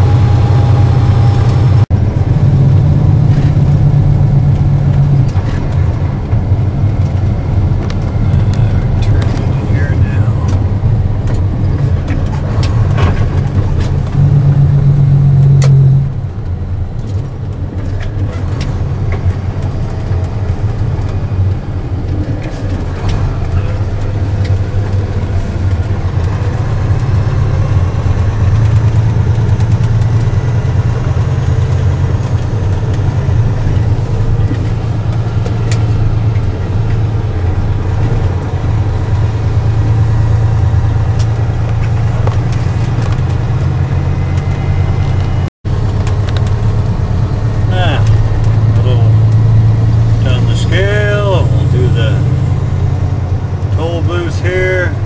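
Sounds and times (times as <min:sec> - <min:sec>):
vehicle engine and road noise: 0:00.0 - 0:55.0.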